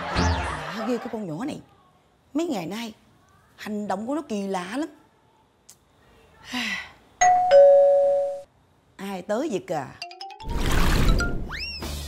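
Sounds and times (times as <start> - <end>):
two-note doorbell chime: 7.2 - 8.5.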